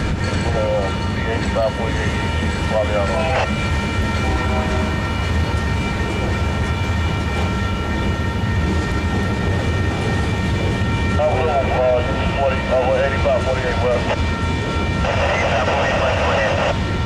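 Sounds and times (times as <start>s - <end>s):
steady high-pitched tones: 0.0s - 17.0s
train wheels rumbling on rail: 0.0s - 17.0s.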